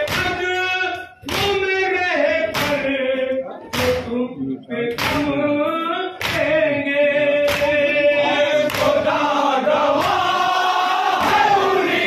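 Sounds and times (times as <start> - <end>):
men singing in unison: 0.0 - 12.0.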